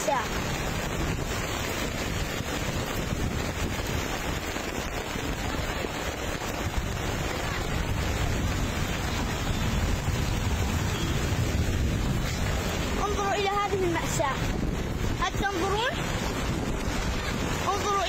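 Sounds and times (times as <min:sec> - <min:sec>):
floodwater rushing: 0:00.0 - 0:18.0
wind buffeting microphone: 0:00.0 - 0:18.0.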